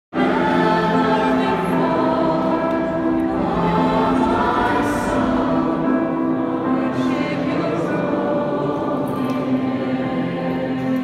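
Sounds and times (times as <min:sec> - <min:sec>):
choir singing held chords: 0:00.1 - 0:11.0.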